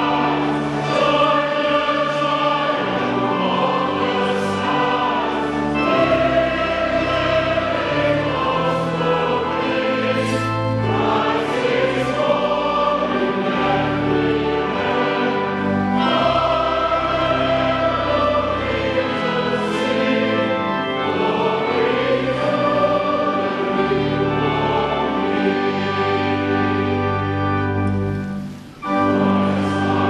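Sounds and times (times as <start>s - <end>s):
congregation and choir singing hymn: 0.0s - 30.0s.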